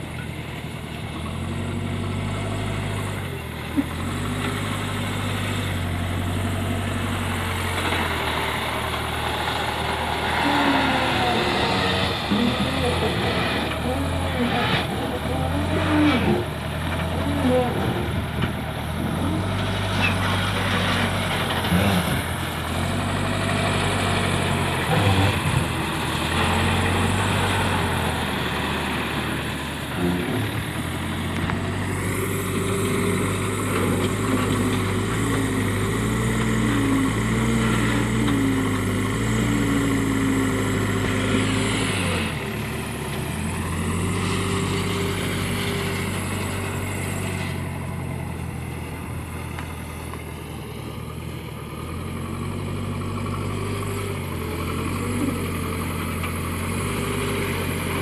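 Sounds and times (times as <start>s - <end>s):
diesel engines running: 0.0s - 58.0s.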